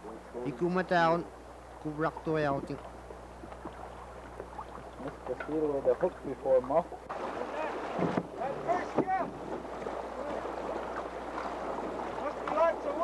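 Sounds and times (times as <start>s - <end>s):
water washing around boat: 0.0s - 13.0s.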